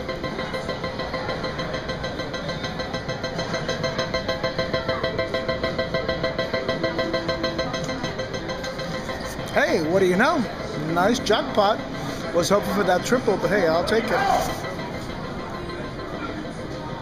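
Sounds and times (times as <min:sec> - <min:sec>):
slot machine jackpot alarm: 0:00.0 - 0:17.0.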